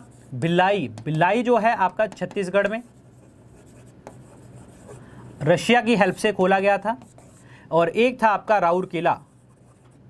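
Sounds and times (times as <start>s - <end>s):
pen writing on a board: 0.9s - 5.0s, 6.0s - 7.4s.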